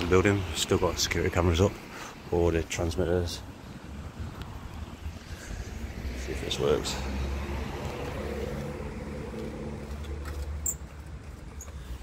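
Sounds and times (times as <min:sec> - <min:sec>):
road traffic: 0:00.0 - 0:12.0
wind rumble on microphone: 0:03.9 - 0:06.2.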